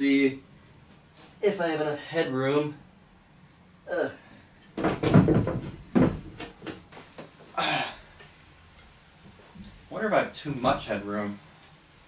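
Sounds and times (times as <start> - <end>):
knocks on metal frame: 4.8 - 6.8.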